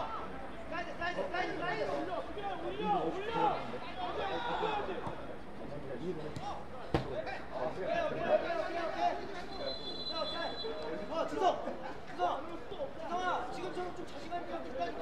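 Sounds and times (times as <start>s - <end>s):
players shouting to each other: 1.4s - 5.2s.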